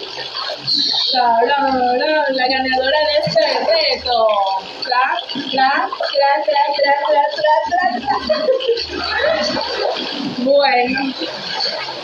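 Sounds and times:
water splashing in pool: 0.0s - 12.0s.

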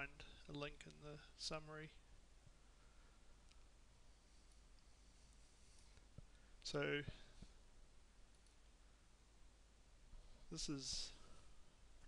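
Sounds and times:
low steady hum: 0.0s - 12.0s
computer mouse clicks: 8.3s - 8.6s.

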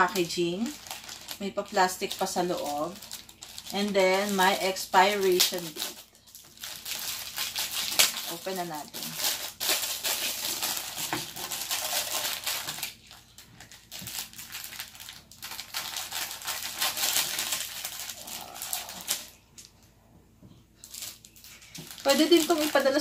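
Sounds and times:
plastic wrapping crinkling: 0.0s - 19.9s, 20.8s - 23.0s.

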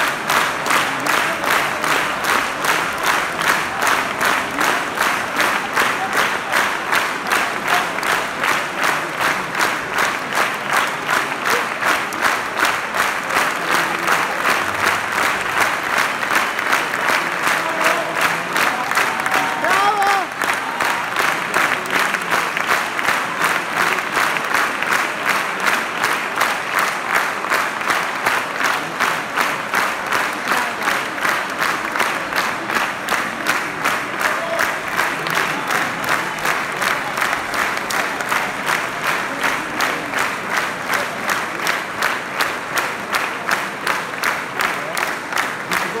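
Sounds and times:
audience clapping in unison: 0.0s - 46.0s
crowd voices: 0.0s - 46.0s.

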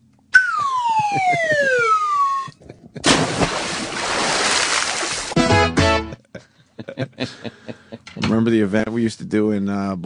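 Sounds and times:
falling whistle sound effect: 0.3s - 2.6s.

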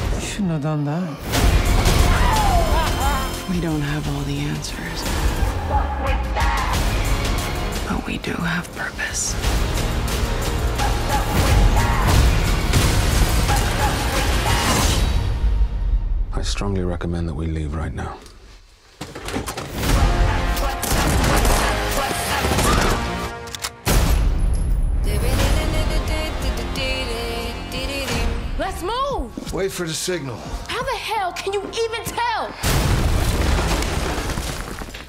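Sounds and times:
dramatic trailer music: 0.0s - 17.0s, 19.7s - 33.3s.

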